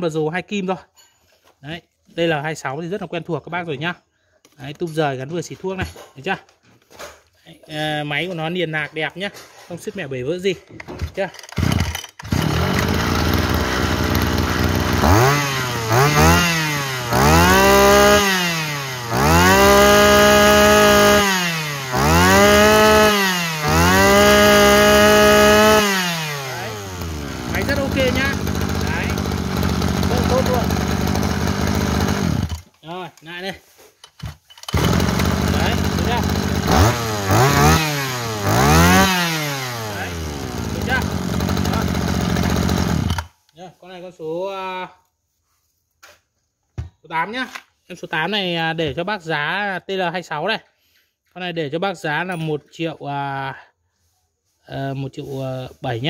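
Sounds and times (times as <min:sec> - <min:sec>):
two-stroke engine revving: 0:11.5 - 0:32.6, 0:34.7 - 0:43.3.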